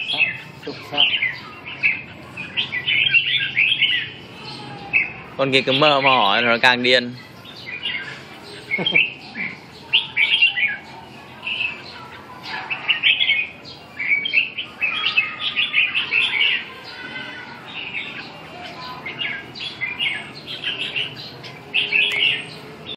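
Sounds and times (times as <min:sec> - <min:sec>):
birds singing and calling: 0:00.0 - 0:22.9.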